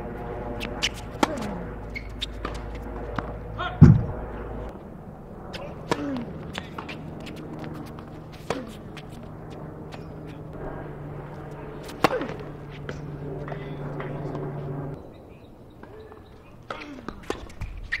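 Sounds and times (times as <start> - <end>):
tennis ball hit by racket: 0.6 - 4.2, 5.6 - 9.1, 11.8 - 13.1
ball bounces: 0.6 - 4.3.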